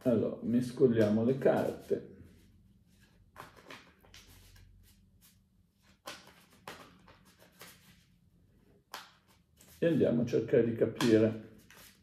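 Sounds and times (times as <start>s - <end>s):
cards being shuffled: 0.7s - 8.1s, 8.8s - 10.2s, 10.9s - 12.0s.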